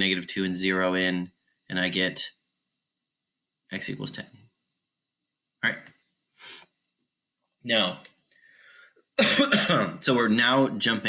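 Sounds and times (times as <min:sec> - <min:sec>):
man clearing his throat: 0:09.2 - 0:10.0.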